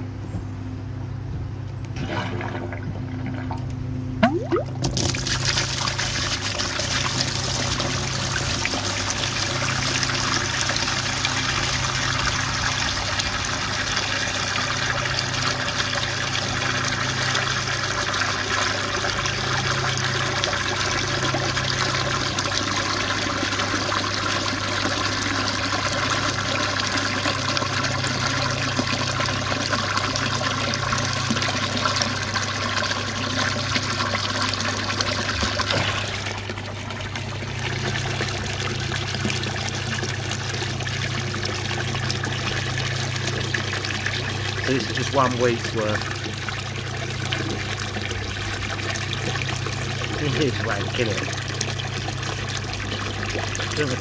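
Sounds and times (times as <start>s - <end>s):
water gushing into plastic tub: 4.2s - 54.0s.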